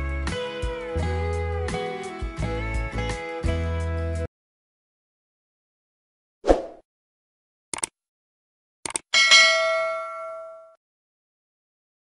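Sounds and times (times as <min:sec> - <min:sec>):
bell ding: 0:09.2 - 0:10.8.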